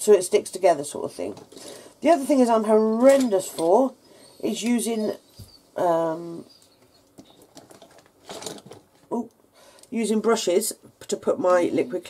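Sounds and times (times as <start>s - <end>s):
objects clattering: 7.1s - 9.2s.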